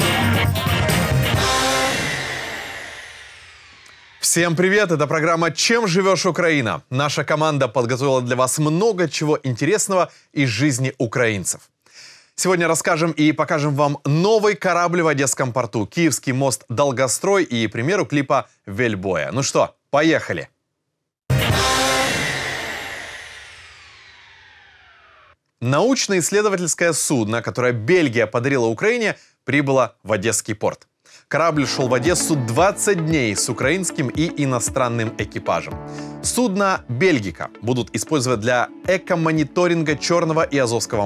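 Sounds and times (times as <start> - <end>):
rock guitar chord: 0.0 - 4.2
sweep falling in pitch: 0.0 - 4.9, 21.3 - 25.3.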